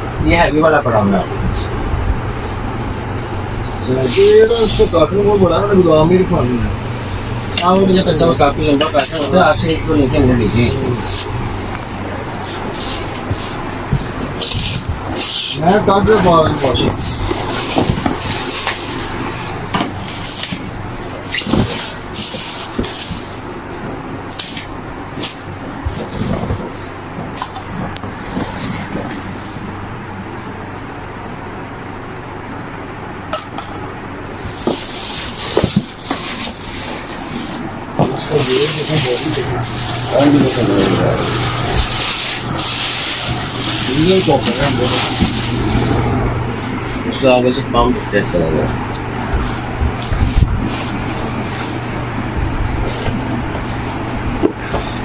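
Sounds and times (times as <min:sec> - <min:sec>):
low background hum: 0:00.0 - 0:55.0
plastic packaging crinkling: 0:12.4 - 0:19.2, 0:19.9 - 0:23.6, 0:34.5 - 0:47.0
indistinct voices: 0:37.4 - 0:55.0.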